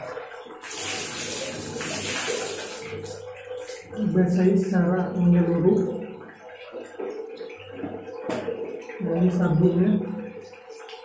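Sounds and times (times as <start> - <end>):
water splashing over a face: 0.6 - 3.8.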